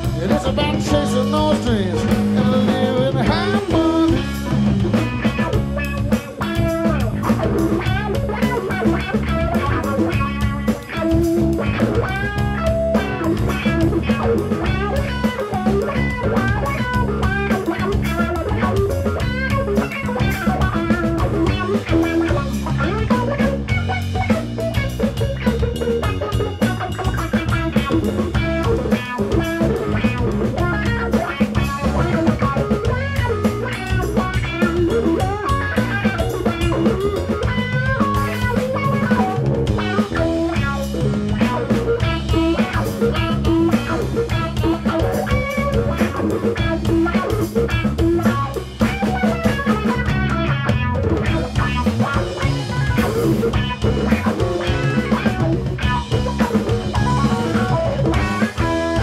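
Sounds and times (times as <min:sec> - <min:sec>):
drum kit: 0:00.0 - 0:59.0
electric bass: 0:00.0 - 0:59.0
electric guitar: 0:00.0 - 0:59.0.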